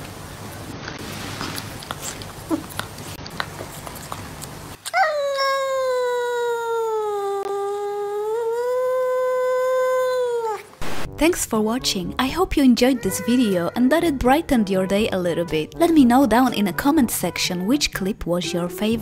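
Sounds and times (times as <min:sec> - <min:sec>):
cat yowling: 0:04.8 - 0:10.8.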